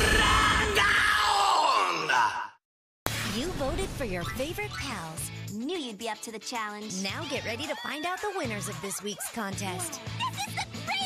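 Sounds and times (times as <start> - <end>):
commercial music: 3.1 - 11.0.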